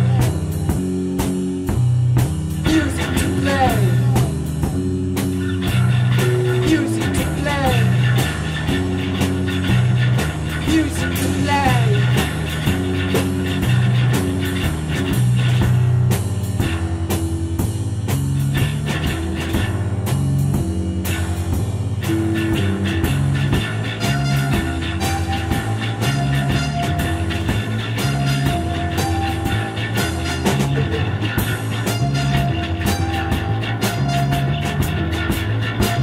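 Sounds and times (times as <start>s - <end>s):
drum kit steady beat: 0.0s - 36.0s
sustained low bass notes: 0.0s - 36.0s
gliding guitar notes: 2.6s - 16.1s, 22.0s - 36.0s.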